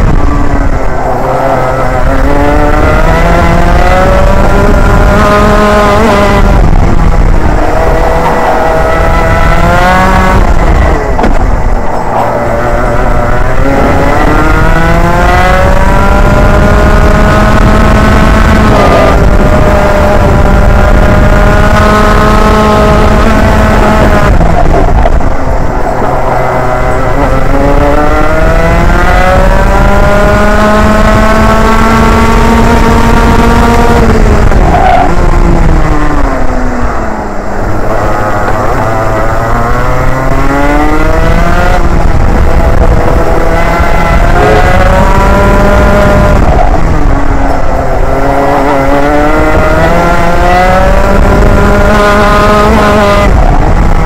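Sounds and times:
kart engine revving high: 0.0s - 54.0s.

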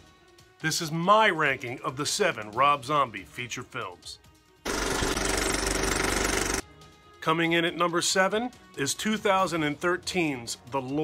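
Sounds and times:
film projector clatter: 4.7s - 6.6s.

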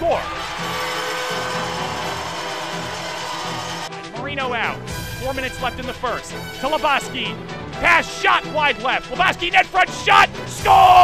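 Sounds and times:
commentator shouting: 0.0s - 0.4s, 4.2s - 11.0s
crowd cheering: 0.0s - 4.0s
background music: 0.0s - 11.0s.

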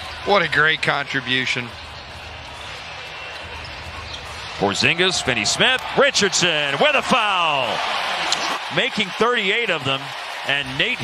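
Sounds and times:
arena crowd din: 0.0s - 11.0s.

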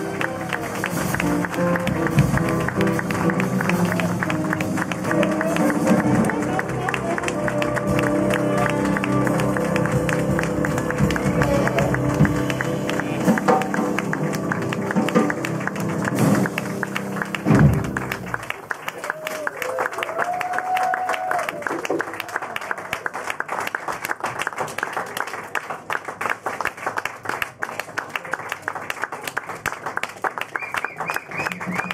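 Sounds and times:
jazz band playing: 0.0s - 18.8s
audience applauding: 0.0s - 31.9s.

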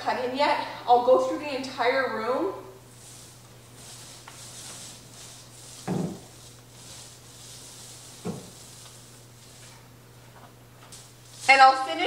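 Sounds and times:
steady low hum: 2.0s - 12.0s
paint roller swishing on wall: 2.3s - 12.0s.

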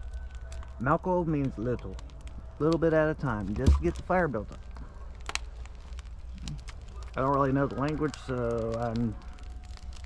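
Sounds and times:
sharp pops of fire: 0.0s - 10.0s
wood fire crackling: 0.0s - 10.0s.

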